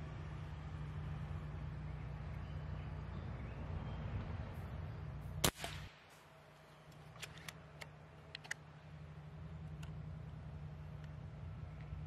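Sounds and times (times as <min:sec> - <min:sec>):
air rifle shot: 0:05.4 - 0:06.2.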